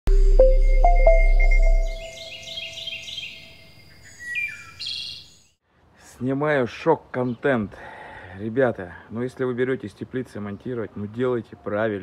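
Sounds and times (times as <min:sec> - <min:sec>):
birds chirping: 0:00.1 - 0:05.3.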